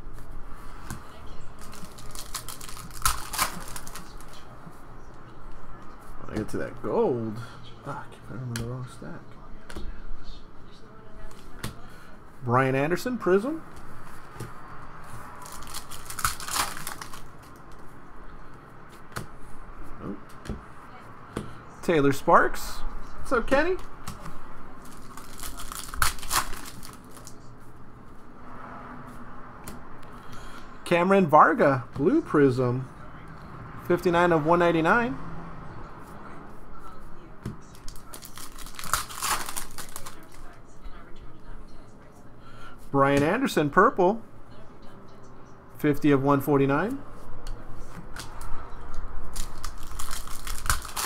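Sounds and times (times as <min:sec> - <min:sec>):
cards being flipped through: 0:00.9 - 0:04.5, 0:15.2 - 0:17.9, 0:23.8 - 0:27.4, 0:37.8 - 0:40.5, 0:49.3 - 0:51.0.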